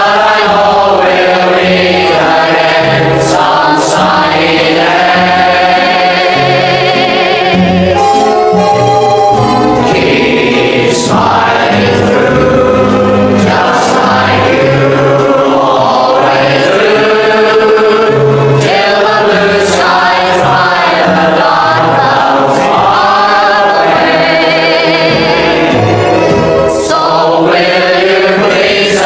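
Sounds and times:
choir singing slow song: 0.0s - 8.5s, 9.8s - 29.0s.

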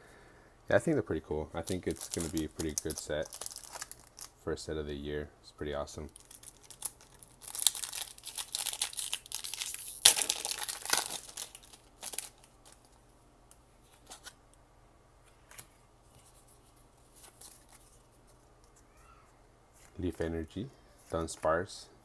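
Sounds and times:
foil wrapper crinkling: 1.6s - 4.4s, 6.1s - 12.9s.

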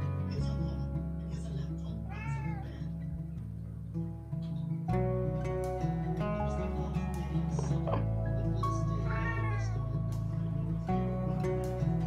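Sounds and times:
background music: 0.0s - 12.0s
cat meowing: 2.0s - 2.9s, 8.9s - 9.9s.

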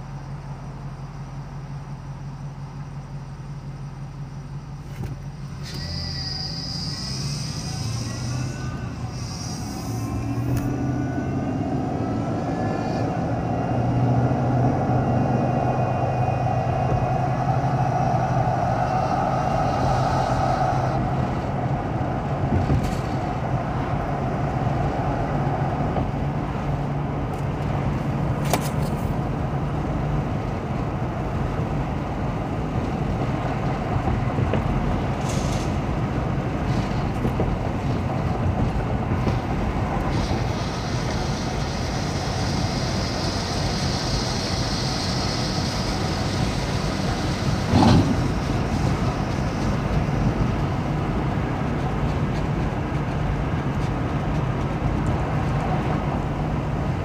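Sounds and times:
rising whine: 0.0s - 28.4s
car engine accelerating: 0.0s - 57.0s
road noise: 0.0s - 57.0s.

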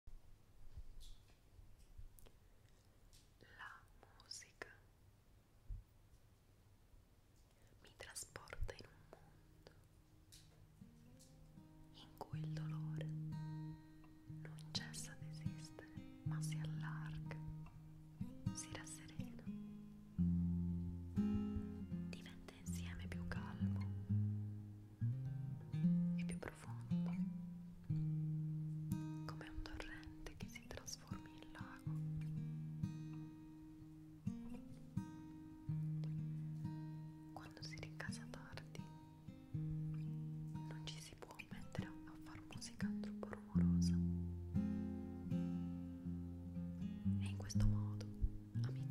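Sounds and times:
acoustic guitar plucked notes: 10.8s - 40.8s, 42.6s - 48.9s.

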